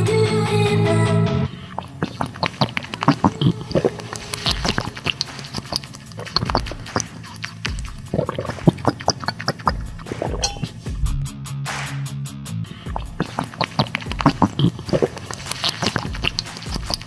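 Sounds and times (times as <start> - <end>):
gulping and swallowing: 1.7 - 10.8, 12.9 - 17.0.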